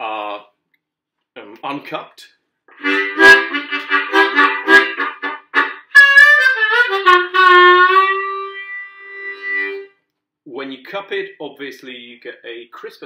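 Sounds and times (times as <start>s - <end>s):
harmonica playing: 2.7s - 10.0s.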